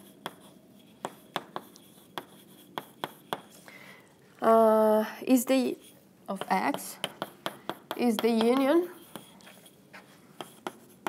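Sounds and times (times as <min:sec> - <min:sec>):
chalk writing on blackboard: 0:00.0 - 0:03.6, 0:05.7 - 0:11.0.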